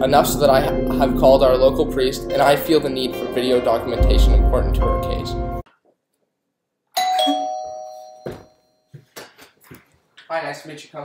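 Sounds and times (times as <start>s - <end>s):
two-note doorbell chime: 7.0s - 9.0s.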